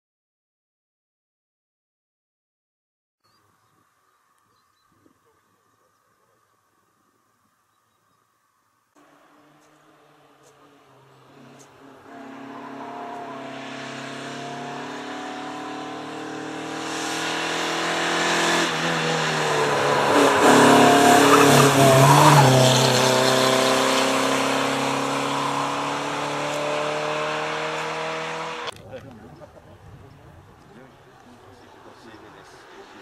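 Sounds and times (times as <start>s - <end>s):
rally car engine at full throttle: 9.0s - 28.8s.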